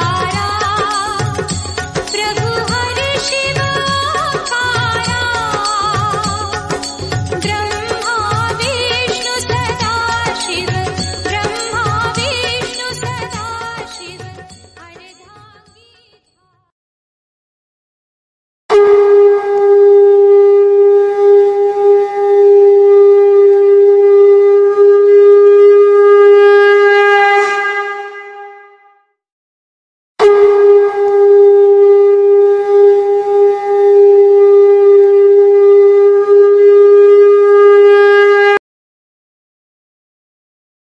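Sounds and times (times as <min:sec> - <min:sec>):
conch shell blasts: 0:18.7 - 0:28.9, 0:30.2 - 0:38.6.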